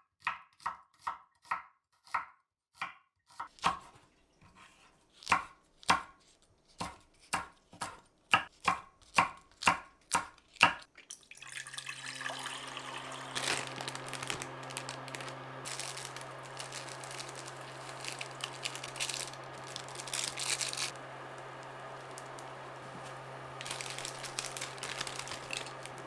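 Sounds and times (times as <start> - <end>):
knife chopping on wooden board: 0.2 - 4.0, 4.6 - 6.2, 6.8 - 10.8
water pouring into saucepan: 11.0 - 14.1.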